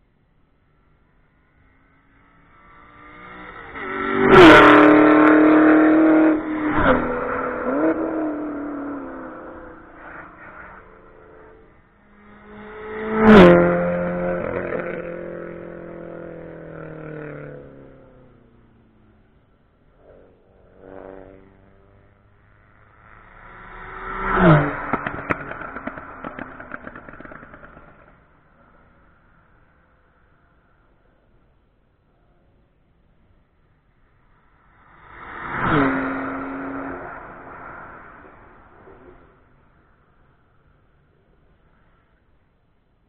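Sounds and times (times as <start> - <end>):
race cars passing at speed: 0.6 - 42.7.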